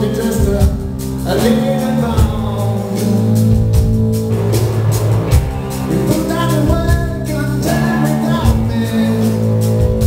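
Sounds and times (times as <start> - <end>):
man singing into microphone: 0.0 - 3.6, 5.9 - 9.7
live rock band playing: 0.0 - 10.0.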